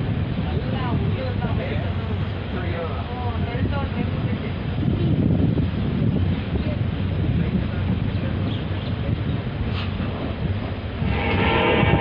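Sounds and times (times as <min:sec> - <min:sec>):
train rumbling on track: 0:00.0 - 0:12.0.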